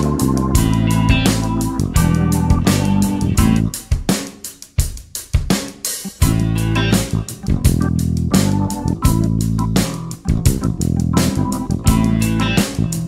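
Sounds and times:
drum hits: 0.0s - 8.0s, 10.0s - 12.9s
funk backing track: 0.0s - 13.0s.

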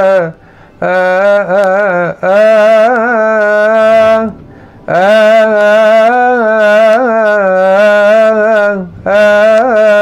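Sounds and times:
man chanting a hymn: 0.0s - 10.0s.

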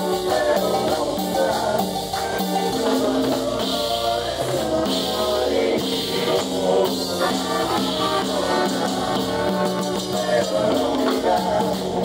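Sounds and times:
live cumbia band music: 0.0s - 12.0s.

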